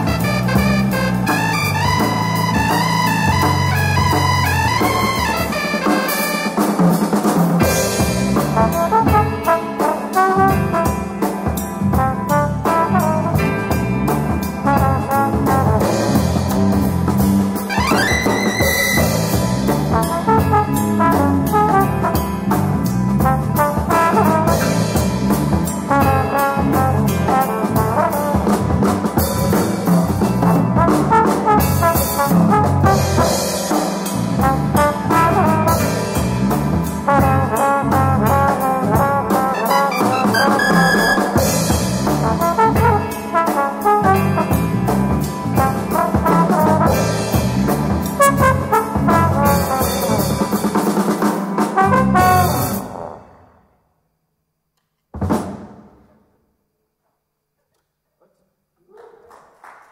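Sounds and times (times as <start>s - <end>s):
jazz trombone melody: 0.0s - 53.2s
drum kit: 0.0s - 53.5s, 55.1s - 56.2s.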